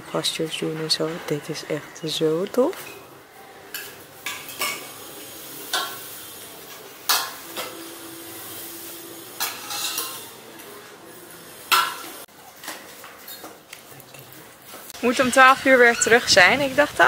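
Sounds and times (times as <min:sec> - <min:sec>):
metal spoons clinking on steel bowls: 0:03.7 - 0:05.0, 0:09.4 - 0:10.9.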